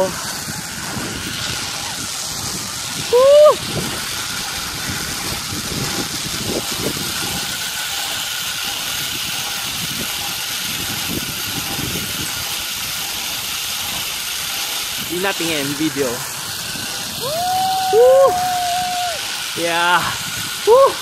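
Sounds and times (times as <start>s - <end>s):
wind rushing over microphone: 0.0s - 13.0s, 14.9s - 21.0s.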